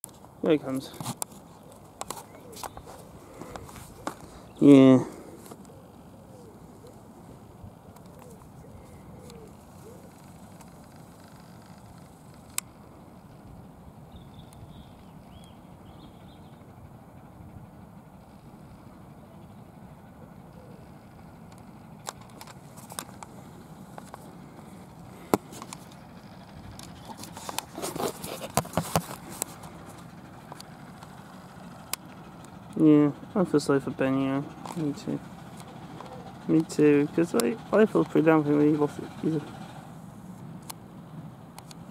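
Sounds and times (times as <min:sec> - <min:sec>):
steady low rumble: 0:00.1 - 0:41.9
pigeon cooing: 0:01.5 - 0:12.0, 0:19.2 - 0:21.4, 0:35.6 - 0:36.5
miniature train running: 0:09.3 - 0:41.9.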